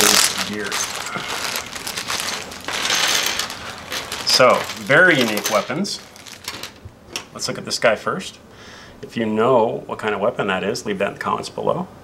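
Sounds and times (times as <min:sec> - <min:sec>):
plastic bag crinkling: 0:00.0 - 0:06.9
small plastic parts clattering on table: 0:00.0 - 0:07.3.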